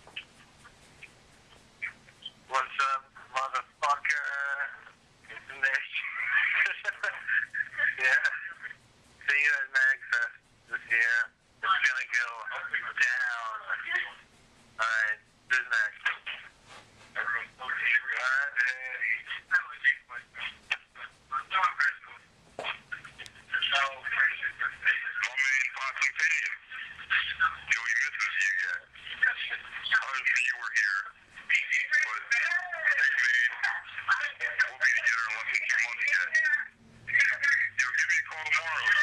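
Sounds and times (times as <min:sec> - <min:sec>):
voicemail voices over phone speaker: 0:01.8 - 0:39.0.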